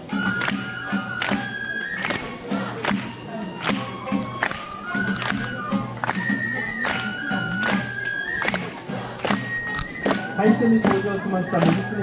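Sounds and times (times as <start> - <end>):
drumbeat: 0.0 - 7.9
flute long notes: 0.0 - 12.0.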